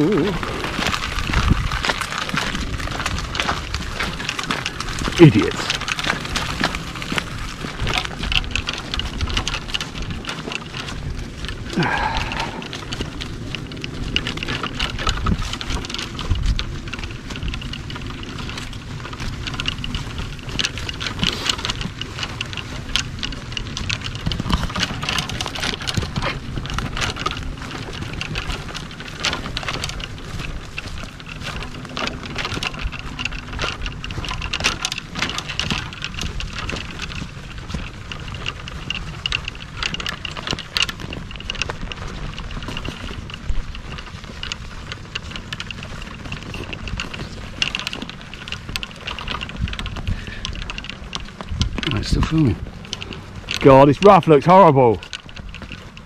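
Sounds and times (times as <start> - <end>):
golf clubs rattling and clicking: 0.0 - 56.0
trolley wheels rumbling on grass: 0.0 - 56.0.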